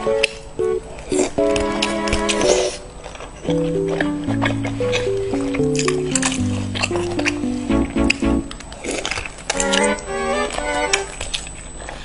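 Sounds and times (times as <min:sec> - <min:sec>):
melody over bass line: 0:03.5 - 0:08.6.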